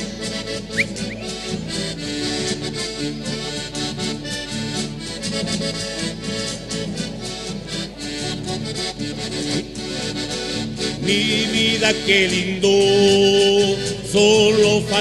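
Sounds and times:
accordion playing folk tune: 0:00.0 - 0:15.0
strummed acoustic guitars: 0:00.0 - 0:15.0.

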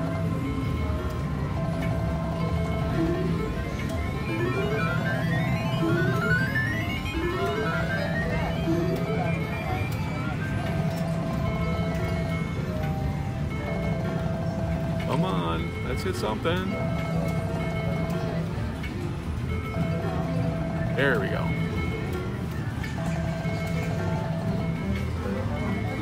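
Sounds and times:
looping electronic tune: 0:00.0 - 0:26.0
short rising electronic tones: 0:03.0 - 0:10.2.

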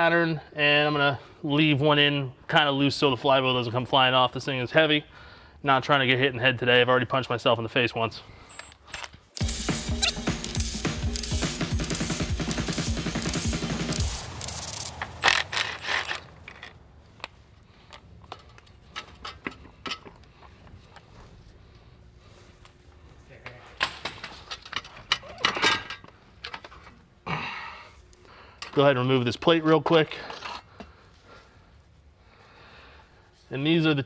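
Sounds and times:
impact wrench hammering: 0:09.4 - 0:16.6
tools clattering: 0:11.2 - 0:20.3.

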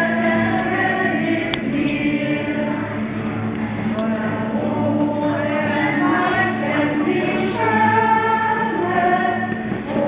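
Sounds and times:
group of voices singing: 0:00.0 - 0:10.0.

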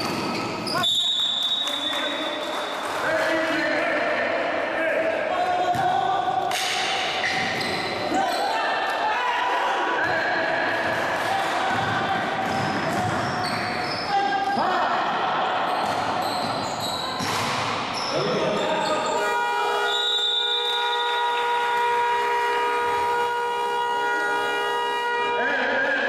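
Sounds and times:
players' voices: 0:00.6 - 0:26.0
basketball bouncing on court: 0:05.6 - 0:08.1, 0:11.6 - 0:14.6, 0:15.7 - 0:18.0.

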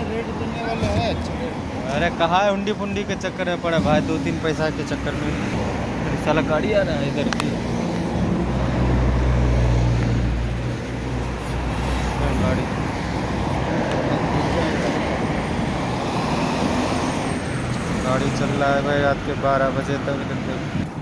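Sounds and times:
tyre and traffic noise: 0:00.0 - 0:21.0.

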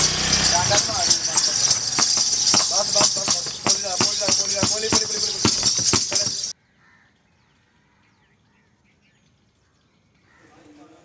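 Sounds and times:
small birds chirping: 0:00.0 - 0:10.5.

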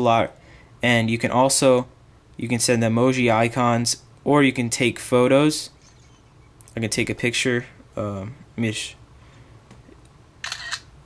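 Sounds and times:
camera shutter click: 0:10.4 - 0:10.9.

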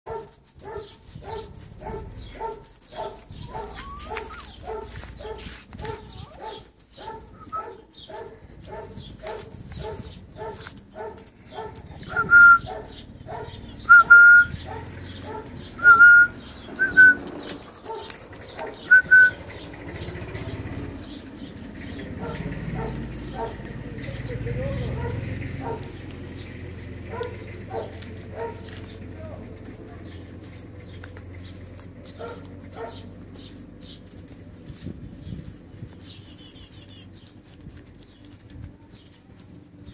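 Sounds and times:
puppies yapping: 0:00.1 - 0:34.6.

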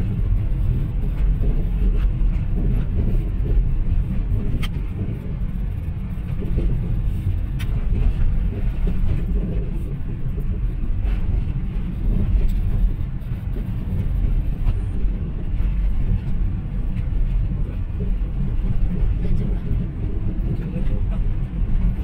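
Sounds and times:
car engine and tyre noise: 0:00.0 - 0:22.0.

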